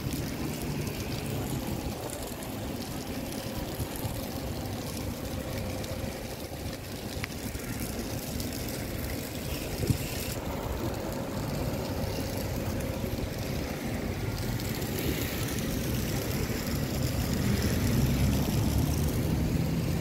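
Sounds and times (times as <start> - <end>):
low street rumble: 0.0 - 20.0
hiss: 7.3 - 20.0.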